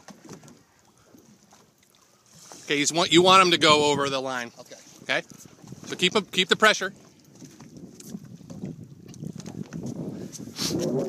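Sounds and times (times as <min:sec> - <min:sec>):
water lapping against boat hull: 0:00.0 - 0:11.0
wind rumbling on microphone: 0:02.9 - 0:11.0.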